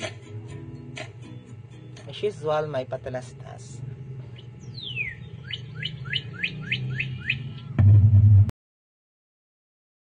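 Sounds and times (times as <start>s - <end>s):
loud low hum: 3.0s - 8.5s
small bird chirping: 4.2s - 7.8s.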